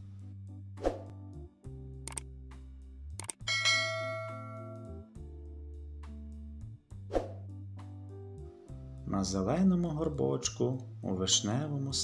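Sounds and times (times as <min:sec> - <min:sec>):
soft background music: 0:00.0 - 0:12.0
mouse clicks: 0:02.1 - 0:02.3
bright bell ding: 0:03.5 - 0:05.0.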